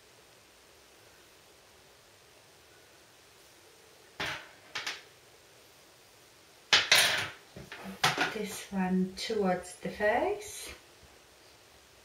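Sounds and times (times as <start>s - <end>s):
small objects knocking: 4.2s - 5.0s, 6.7s - 8.6s.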